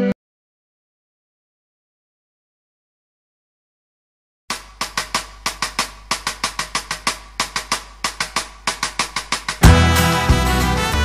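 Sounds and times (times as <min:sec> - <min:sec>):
snare drum quick rhythm: 0:04.5 - 0:11.0.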